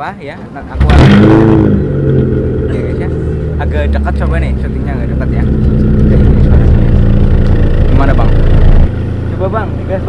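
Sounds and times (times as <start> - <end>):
car engine starting and idling: 0.6 - 10.0.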